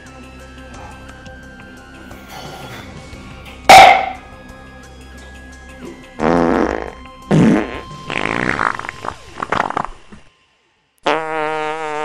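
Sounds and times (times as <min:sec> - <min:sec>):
background music: 0:00.0 - 0:10.5.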